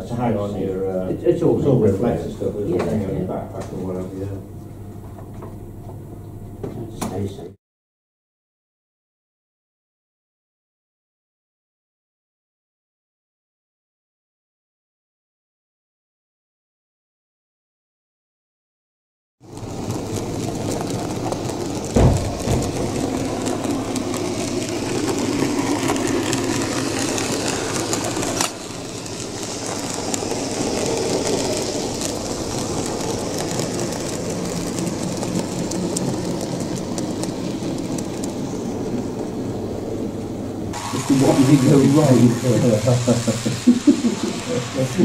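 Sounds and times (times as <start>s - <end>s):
model train rolling on track: 19.4s - 45.0s.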